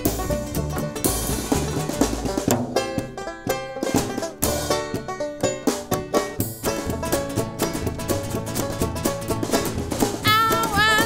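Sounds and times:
acoustic band playing: 0.0s - 11.0s
banjo picking: 0.0s - 11.0s.

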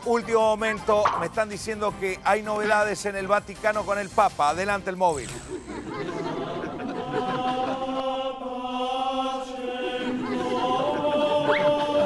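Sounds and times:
choir singing slow chant: 5.8s - 12.0s.

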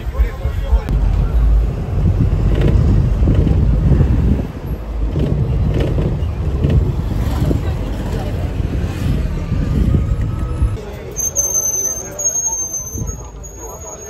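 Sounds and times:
minibus engine and road rumble: 0.0s - 14.0s.

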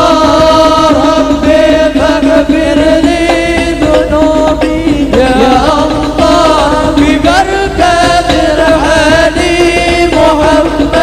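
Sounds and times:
frame drums beat: 0.0s - 11.0s
men chanting in unison: 0.0s - 11.0s.

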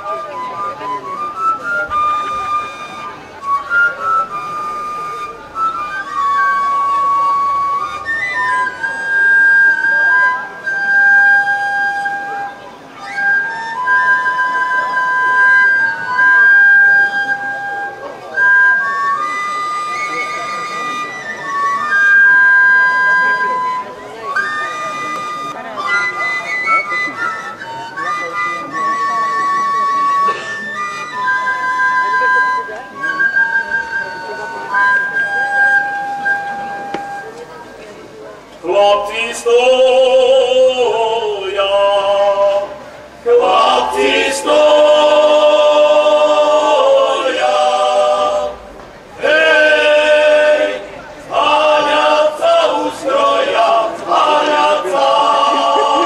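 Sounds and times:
wooden flutes playing melody: 0.0s - 56.0s.

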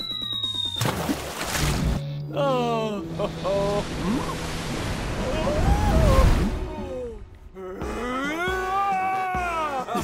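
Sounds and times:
cartoon rushing water wave: 3.3s - 6.8s.

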